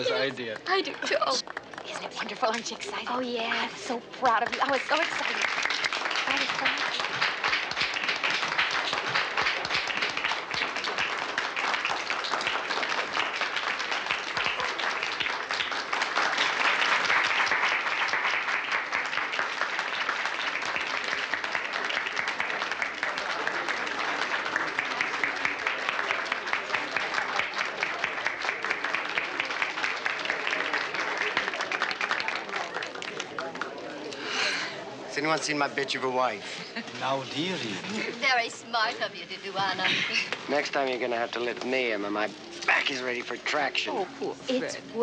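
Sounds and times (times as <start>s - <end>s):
crowd applauding: 0.0s - 36.4s, 39.8s - 45.0s.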